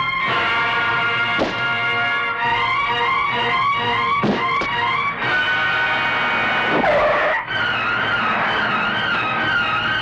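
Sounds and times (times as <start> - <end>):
film music with high melody: 0.0 - 10.0.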